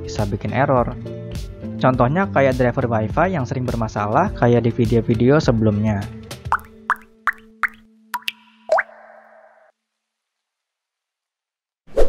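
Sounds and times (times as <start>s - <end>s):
water-drop plop blips: 6.5s - 9.7s.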